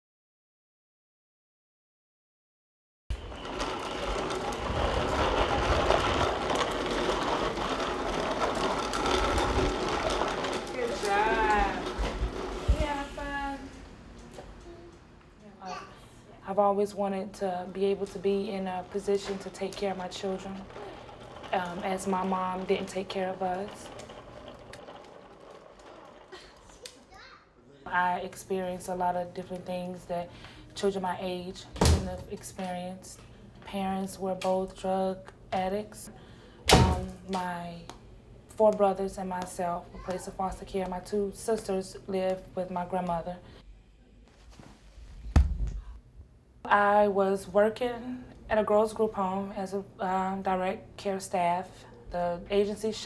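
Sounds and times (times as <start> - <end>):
plastic wheels rolling on concrete: 3.1 - 15.0, 16.7 - 27.4, 28.0 - 36.0, 36.8 - 43.6, 52.2 - 53.0
faint child's voice: 14.6 - 16.1, 27.0 - 27.5.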